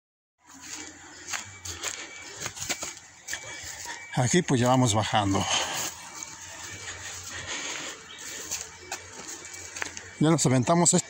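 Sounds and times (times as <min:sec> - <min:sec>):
footsteps crunching through dry grass: 0:00.4 - 0:11.0.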